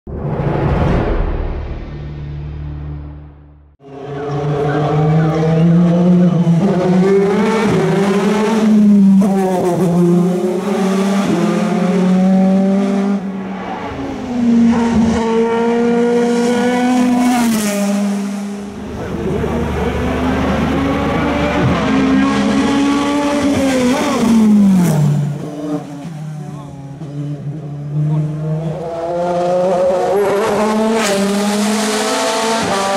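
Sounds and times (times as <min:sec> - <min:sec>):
race car engine at full throttle: 0:00.1 - 0:32.9.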